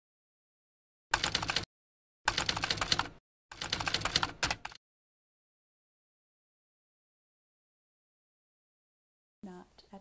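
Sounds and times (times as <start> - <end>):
rapid keyboard key clicks: 1.2 - 1.7, 2.3 - 4.8.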